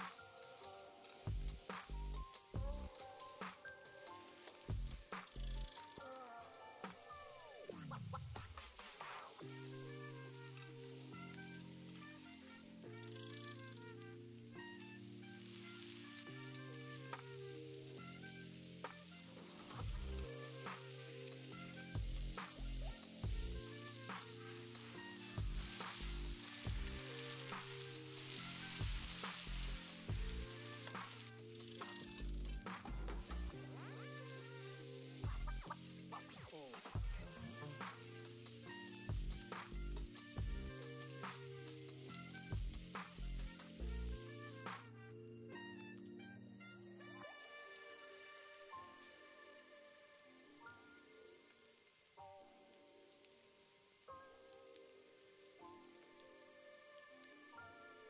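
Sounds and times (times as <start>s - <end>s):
vegetables sizzling in oil: 0.0s - 6.0s, 6.9s - 13.6s, 14.6s - 44.8s, 50.6s - 56.8s
background music with steady beat: 0.0s - 51.2s.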